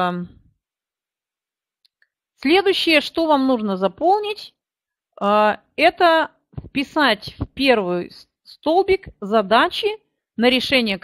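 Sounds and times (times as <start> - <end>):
woman speaking: 0.0 - 0.5, 2.4 - 4.6, 5.2 - 11.0.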